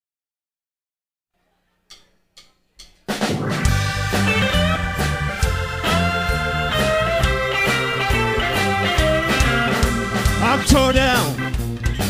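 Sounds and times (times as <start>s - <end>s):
drumstick count-in clicks: 1.9s - 3.3s
live blues band playing: 3.1s - 12.0s.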